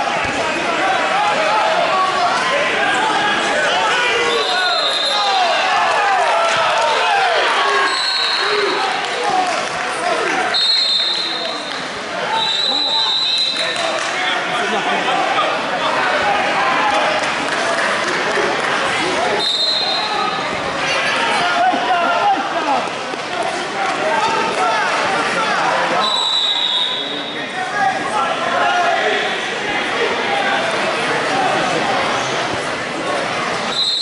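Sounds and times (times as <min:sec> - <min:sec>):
people shouting in echoing hall: 0:00.0 - 0:17.3, 0:18.8 - 0:31.8.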